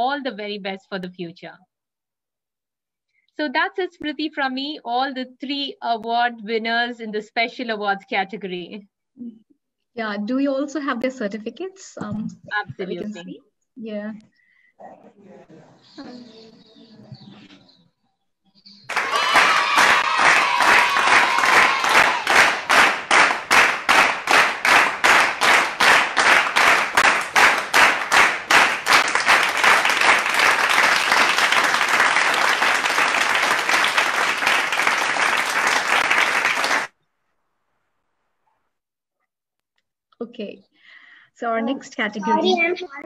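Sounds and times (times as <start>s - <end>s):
applause: 18.9s - 37.0s.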